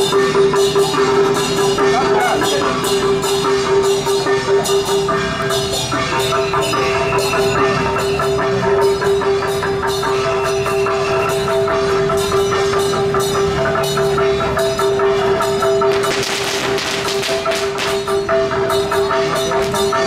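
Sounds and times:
gongs and cymbals striking: 0.0 - 20.0
wood block hits: 15.5 - 18.3.

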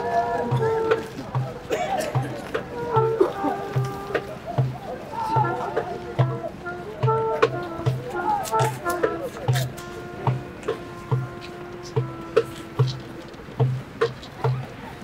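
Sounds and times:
crowd voices: 0.0 - 15.0
flute melody: 0.0 - 15.0
steady low drum beat: 0.0 - 15.0.

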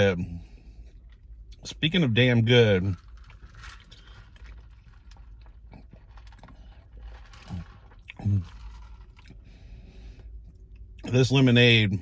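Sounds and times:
swallowing sounds: 3.8 - 9.5.

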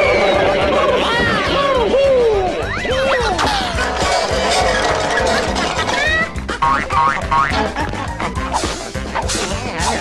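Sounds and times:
cartoon music: 2.6 - 10.0.

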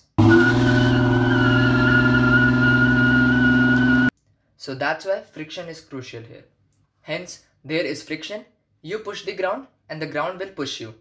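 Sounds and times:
car engine at high revs: 0.2 - 4.1.

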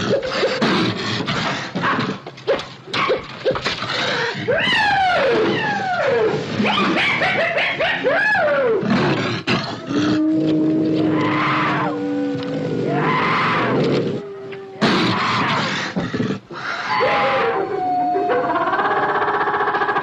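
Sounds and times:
wild animal snarls and roars: 0.0 - 2.2, 8.0 - 17.6
gliding howls: 10.2 - 15.5.

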